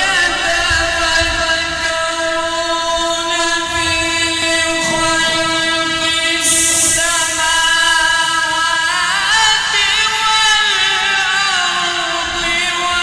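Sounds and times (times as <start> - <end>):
person chanting a long note: 0.0 - 13.0
short hiss: 6.4 - 8.7.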